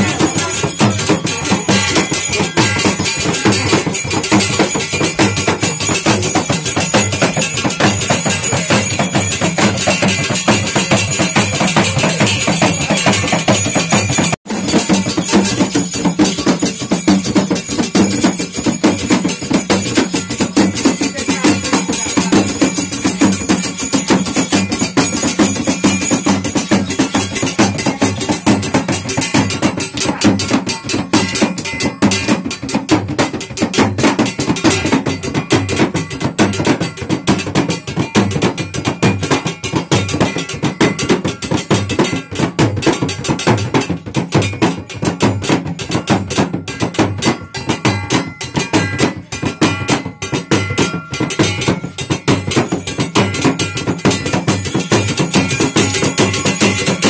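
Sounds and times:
rapid drum strokes: 0:00.0 - 0:57.0
ringing metallic tones: 0:00.0 - 0:57.0.

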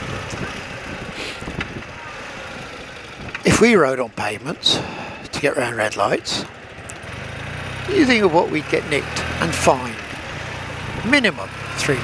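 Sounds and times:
tyre and wind noise: 0:00.0 - 0:03.6
motorcycle engine running: 0:00.0 - 0:12.0.

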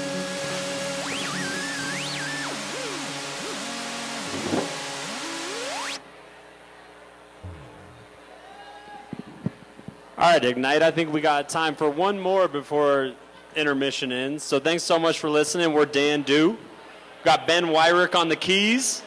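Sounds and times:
keyboard bass and drums playing: 0:00.0 - 0:06.0, 0:07.4 - 0:08.0.

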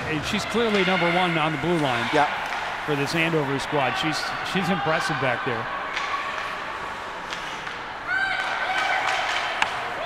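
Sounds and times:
arena noise: 0:00.0 - 0:10.0
hockey sticks and puck clacking: 0:00.2 - 0:10.0.

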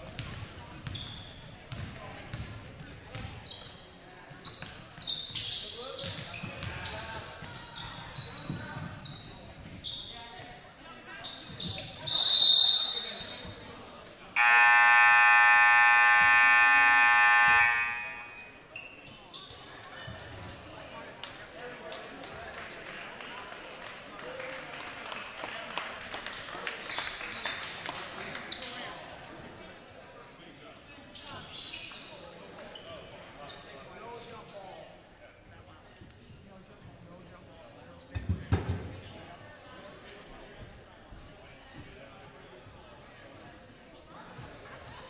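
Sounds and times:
sneakers squeaking: 0:00.1 - 0:10.6, 0:11.2 - 0:13.6, 0:14.4 - 0:21.2, 0:30.9 - 0:33.9
scoreboard horn blast: 0:14.4 - 0:18.4
loud shrill note: 0:14.4 - 0:18.5.

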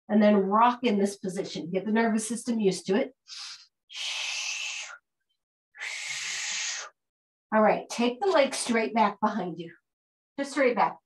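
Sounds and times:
person breathing heavily: 0:03.3 - 0:05.0, 0:05.8 - 0:06.9.

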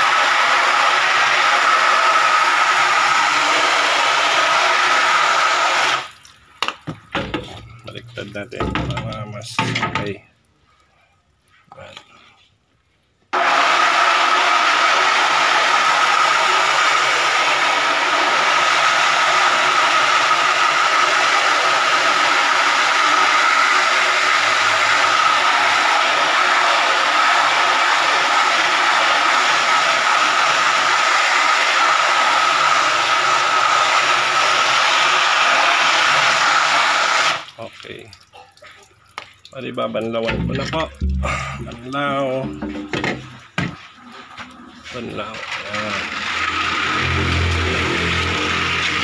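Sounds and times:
hose nozzle spraying water: 0:00.0 - 0:06.4, 0:13.4 - 0:38.2, 0:39.2 - 0:49.0.

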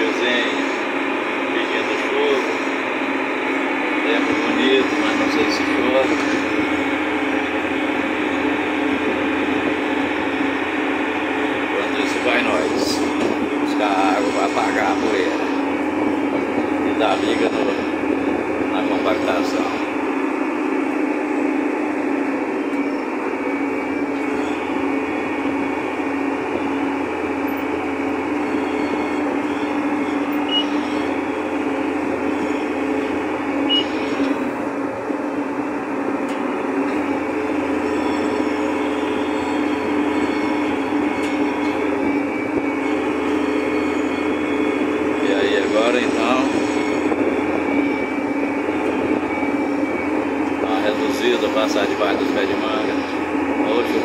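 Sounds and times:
tractor engine running: 0:00.0 - 0:54.0.

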